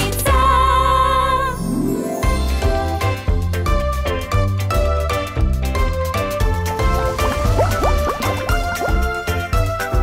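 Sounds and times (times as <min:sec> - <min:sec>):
cheerful background music: 0:00.0 - 0:10.0
cartoon bubbly blips: 0:07.1 - 0:09.2.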